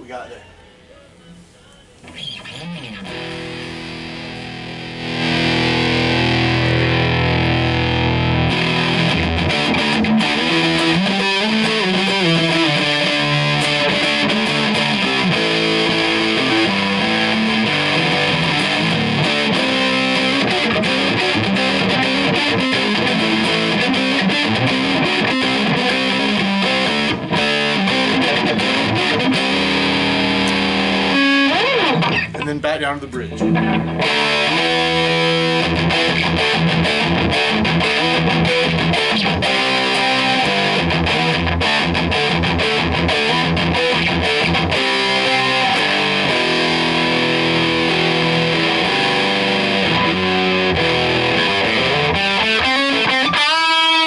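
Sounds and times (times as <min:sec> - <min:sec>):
distorted electric guitar: 0:02.0 - 0:54.0.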